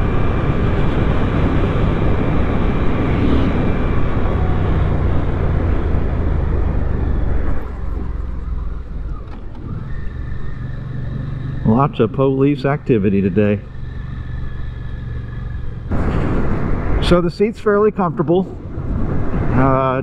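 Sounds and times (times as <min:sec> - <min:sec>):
wind rushing over microphone: 0:00.0 - 0:08.2, 0:15.9 - 0:20.0
motorcycle engine running: 0:00.0 - 0:17.1.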